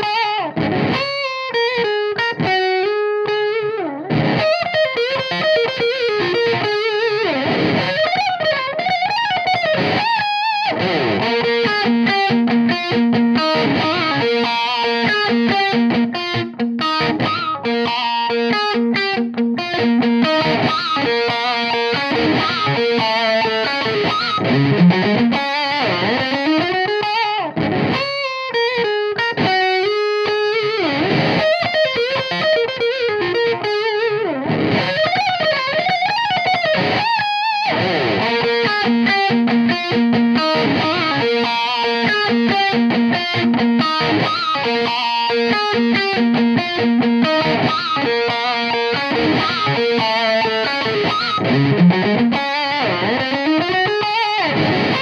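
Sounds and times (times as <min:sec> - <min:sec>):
overdriven electric guitar lead: 0:00.0 - 0:55.0.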